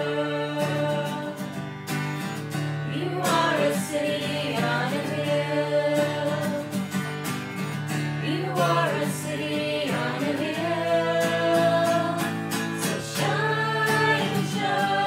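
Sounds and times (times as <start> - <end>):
group singing a worship song: 0.0 - 1.6, 2.8 - 7.0, 8.1 - 15.0
strummed acoustic guitar: 0.0 - 15.0.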